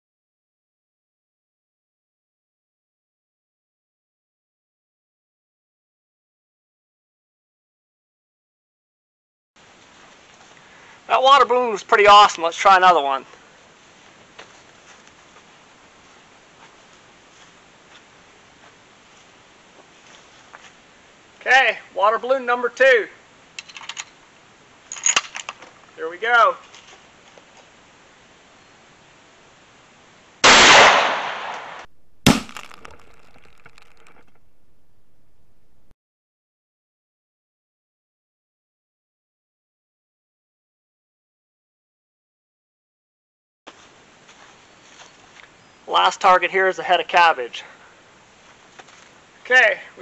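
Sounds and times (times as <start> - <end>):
faint outdoor hiss: 9.6 - 35.9, 43.7 - 50.0
rifle shot: 30.4 - 35.9
water balloon bursting crack: 30.4 - 35.9.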